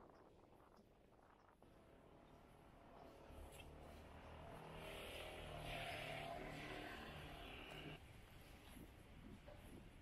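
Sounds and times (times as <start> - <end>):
motor vehicle passing: 3.1 - 8.0.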